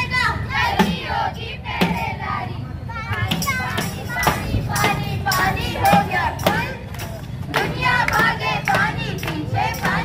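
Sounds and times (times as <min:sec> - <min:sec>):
drum steady beat: 0:03.3 - 0:10.0.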